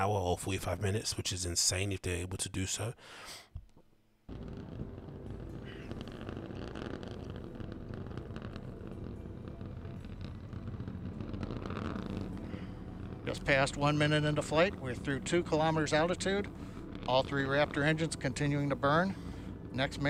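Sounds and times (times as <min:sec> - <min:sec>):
rocket engines roaring: 0:04.3 - 0:20.0.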